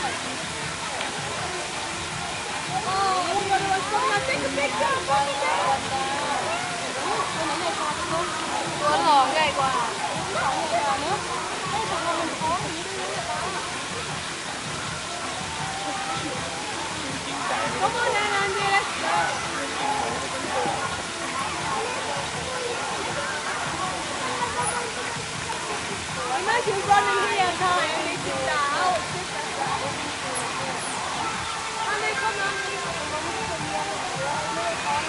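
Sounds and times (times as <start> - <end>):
indistinct chatter: 0.0 - 35.0.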